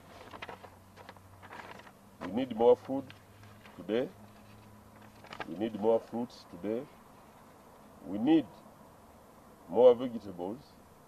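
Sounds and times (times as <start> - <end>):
low steady hum: 0.0 - 11.0
man speaking: 2.2 - 3.1, 3.8 - 4.2, 5.5 - 7.0, 8.0 - 8.7, 9.7 - 10.8.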